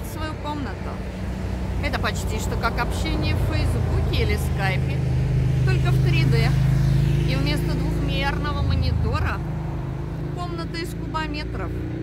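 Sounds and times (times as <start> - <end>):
woman's voice: 0.0 - 1.1, 1.8 - 6.6, 7.2 - 9.5, 10.3 - 12.0
low motor hum: 0.0 - 12.0.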